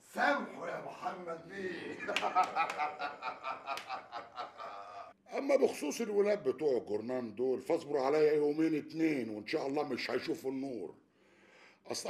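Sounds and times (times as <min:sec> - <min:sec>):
man chuckling: 0:01.8 - 0:05.1.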